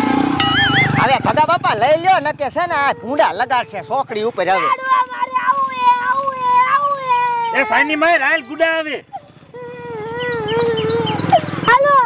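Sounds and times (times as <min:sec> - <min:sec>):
woman wailing: 0:02.8 - 0:11.5.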